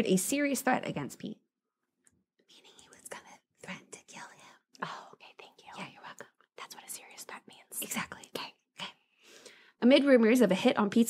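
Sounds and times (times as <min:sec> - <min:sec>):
person whispering: 0:02.5 - 0:09.0.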